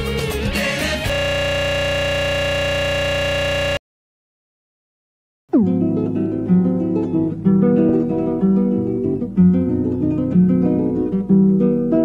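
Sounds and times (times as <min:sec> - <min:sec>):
looping glitched buzzing tone: 0:01.1 - 0:03.8.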